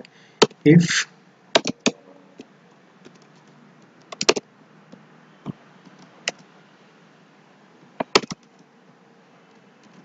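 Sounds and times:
keyboard typing: 0:01.6 - 0:02.0, 0:03.0 - 0:04.4, 0:08.0 - 0:08.6.

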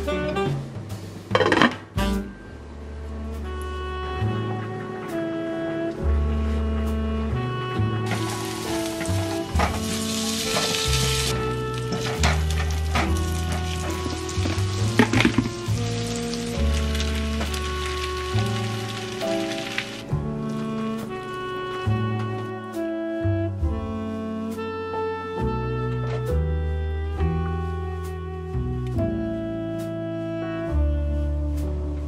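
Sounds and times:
background music with bass line: 0:00.0 - 0:32.0
food sizzling in a hot pan: 0:08.1 - 0:11.3, 0:12.5 - 0:20.0
utensil knocking: 0:11.9 - 0:15.7.

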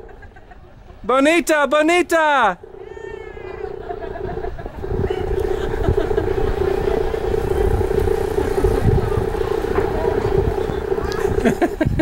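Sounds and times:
boat engine droning: 0:00.0 - 0:00.8, 0:01.8 - 0:12.0
low rumble: 0:02.6 - 0:12.0.

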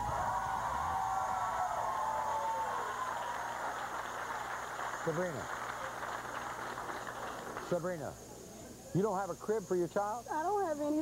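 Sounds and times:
people cheering: 0:00.0 - 0:07.8
audience applauding: 0:00.0 - 0:08.1.

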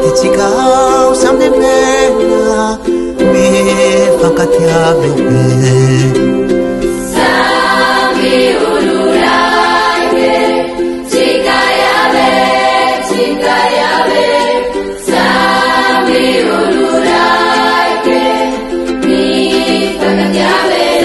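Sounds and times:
youth choir singing a hymn: 0:00.0 - 0:05.3, 0:07.1 - 0:21.0.

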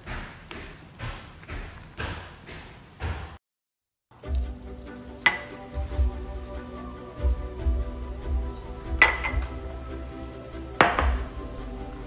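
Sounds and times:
background music with steady beat: 0:04.1 - 0:12.0
object clinking on ceramic bowl: 0:05.2 - 0:05.8, 0:08.4 - 0:09.5.

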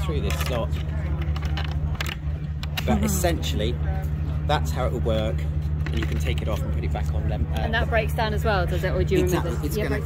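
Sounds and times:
low hum: 0:00.0 - 0:10.0.

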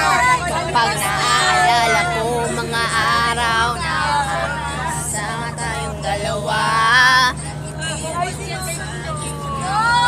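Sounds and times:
bus engine drone: 0:00.0 - 0:10.0
passengers talking: 0:00.0 - 0:10.0.

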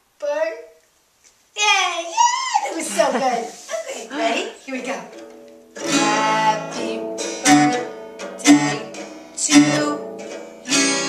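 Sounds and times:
acoustic guitar strummed chords: 0:05.1 - 0:11.0.

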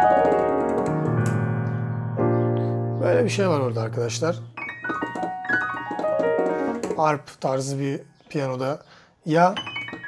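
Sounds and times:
piano chord ringing: 0:00.0 - 0:06.8.

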